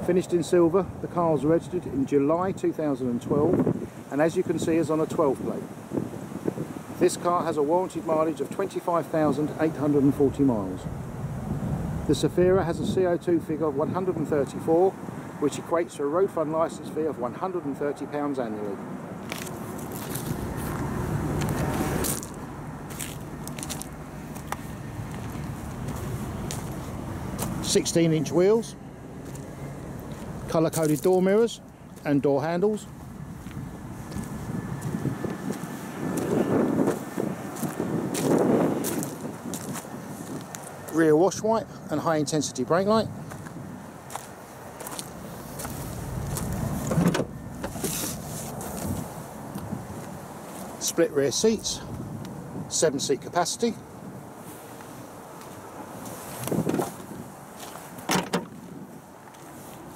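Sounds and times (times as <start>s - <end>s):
footsteps crunching on gravel: 19.2s - 27.7s, 29.2s - 31.4s, 32.8s - 41.0s, 43.3s - 46.8s, 47.7s - 49.1s, 54.4s - 58.0s, 58.6s - 59.9s
tailgate latch clicks and knocks: 46.9s - 47.8s, 58.1s - 58.6s.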